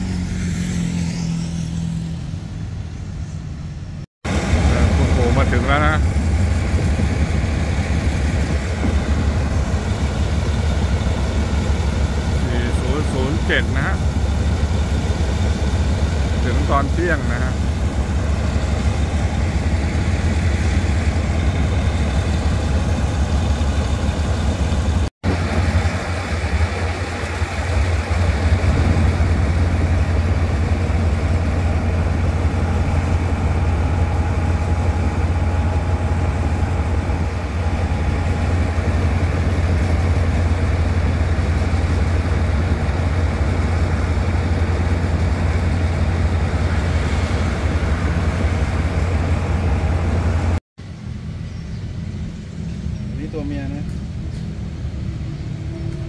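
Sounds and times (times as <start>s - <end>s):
diesel locomotive idling: 2.5s - 56.0s.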